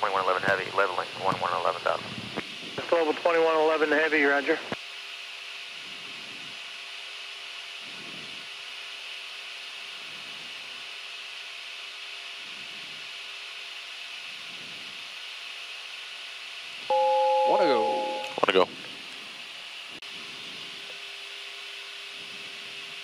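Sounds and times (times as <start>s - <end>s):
faint steady hum: 16.9s - 19.6s.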